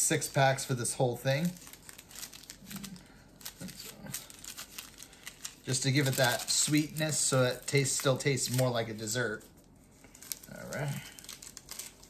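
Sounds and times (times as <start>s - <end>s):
paper packets crinkling and tearing: 0.1s - 12.0s.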